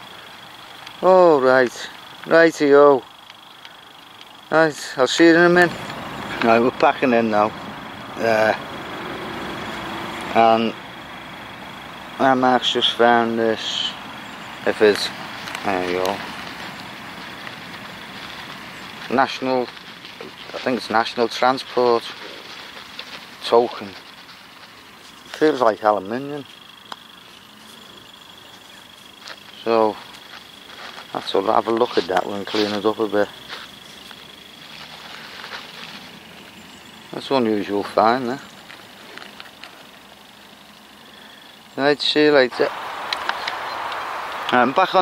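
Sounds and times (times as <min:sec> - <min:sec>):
outdoor background hiss: 0:00.0 - 0:45.0
man talking: 0:01.0 - 0:03.1, 0:04.5 - 0:07.6, 0:08.2 - 0:08.6, 0:10.3 - 0:10.8, 0:12.2 - 0:14.0, 0:14.6 - 0:16.2, 0:19.0 - 0:22.4, 0:23.4 - 0:24.0, 0:25.4 - 0:26.5, 0:29.6 - 0:30.0, 0:31.1 - 0:33.3, 0:37.2 - 0:38.4, 0:41.8 - 0:42.9, 0:43.7 - 0:45.0
faint small ticks: 0:03.2 - 0:04.4.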